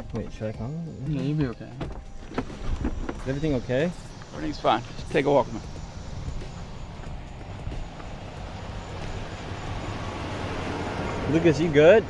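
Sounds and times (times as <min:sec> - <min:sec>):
vehicles rumbling: 0:00.0 - 0:12.0
footsteps on asphalt: 0:01.8 - 0:10.1.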